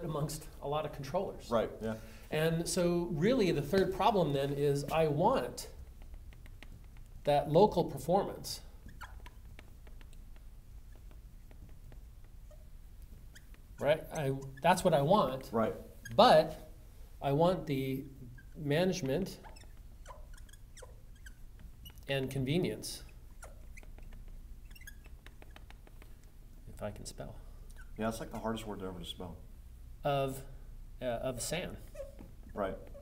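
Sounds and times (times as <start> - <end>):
marker squeaking on glass: 3.2 - 16.8, 17.9 - 26.3, 27.6 - 28.6, 31.6 - 33.0.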